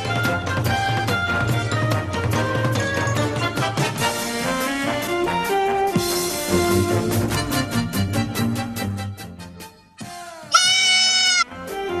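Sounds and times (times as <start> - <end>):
goat bleat: 10.5 - 11.5.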